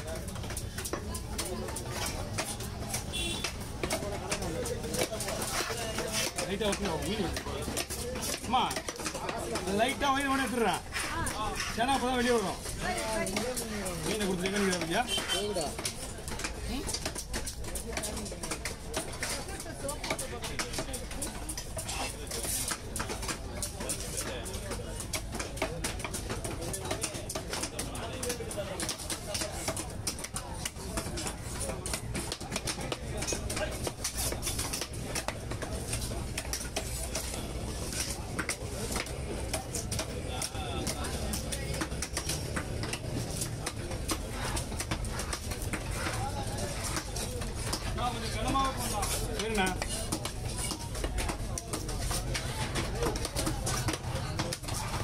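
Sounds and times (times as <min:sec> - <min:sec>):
knife chopping on wooden block: 0:00.4 - 0:55.0.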